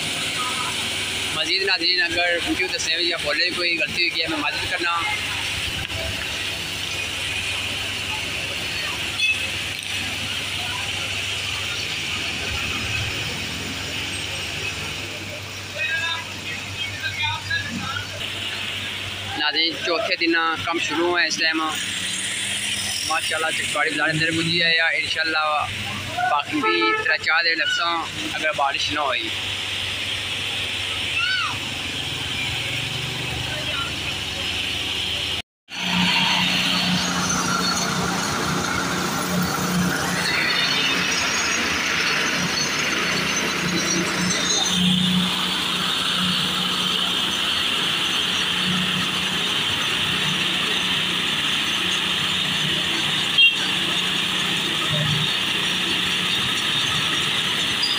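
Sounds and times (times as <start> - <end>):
people's voices: 0.0 - 35.4, 36.5 - 57.9
paver engine droning: 0.0 - 57.9.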